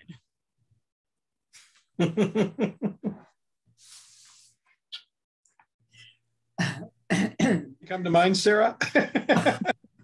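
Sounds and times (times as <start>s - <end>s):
person clearing throat: 6.6s - 7.8s.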